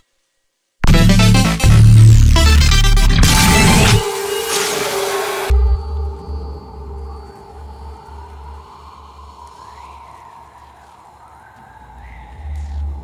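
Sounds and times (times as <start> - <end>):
pulsing low bass: 0.8 - 4.0.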